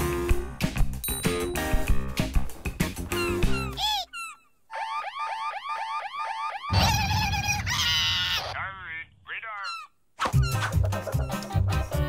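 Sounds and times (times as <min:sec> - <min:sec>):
cartoon chirps: 0:03.2 - 0:10.7.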